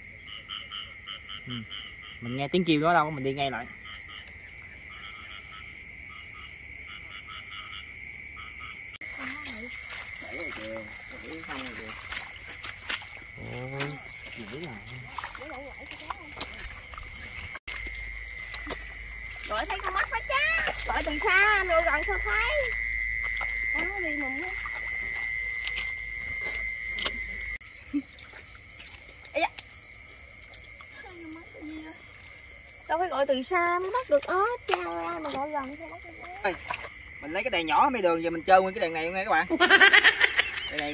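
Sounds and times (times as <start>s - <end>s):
frogs calling in chorus: 0.0s - 40.9s.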